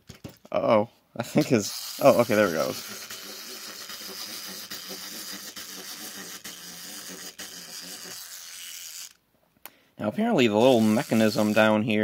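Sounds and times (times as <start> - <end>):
wind-up toy motor whirring: 1.4 - 9.2, 10.5 - 12.0.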